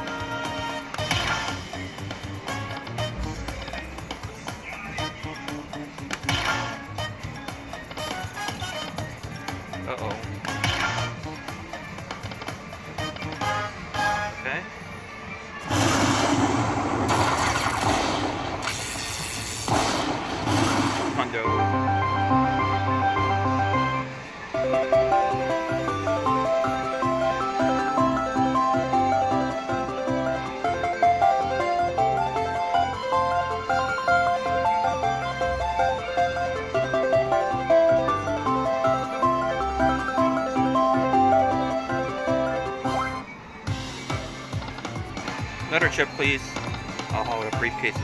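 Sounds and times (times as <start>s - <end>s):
rushing noise: 15.6s - 21.5s
electronic game music and jingles: 21.2s - 44.4s, 45.3s - 48.0s.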